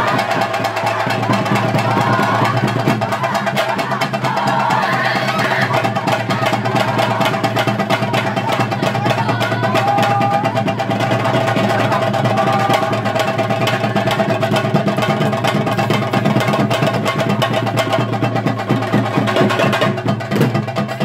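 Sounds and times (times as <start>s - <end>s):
boys shouting: 0.0s - 14.7s
fast drumming: 0.0s - 21.0s.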